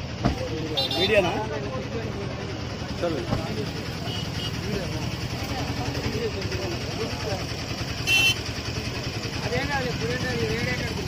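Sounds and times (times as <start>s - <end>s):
vehicle engines rumbling: 0.0s - 11.0s
voices talking: 0.0s - 11.0s.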